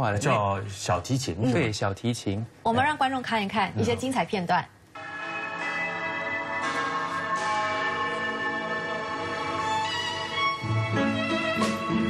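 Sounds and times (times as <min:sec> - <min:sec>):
film score held chord with bells: 0:05.0 - 0:09.8.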